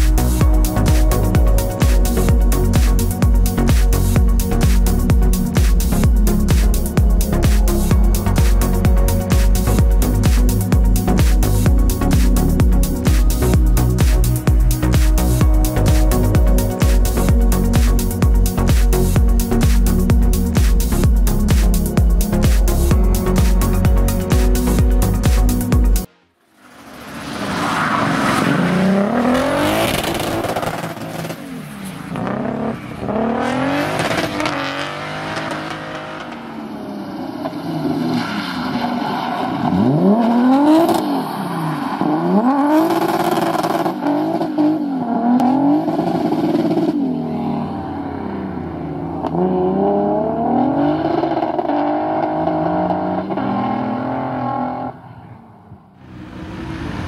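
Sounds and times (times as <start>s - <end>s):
rally car engine revving hard: 27.0s - 31.4s, 32.1s - 36.8s, 39.6s - 41.3s, 42.0s - 55.0s.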